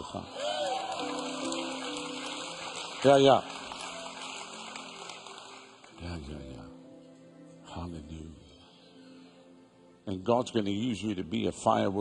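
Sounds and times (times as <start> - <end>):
soft sustained keyboard chords: 0.0 - 12.0.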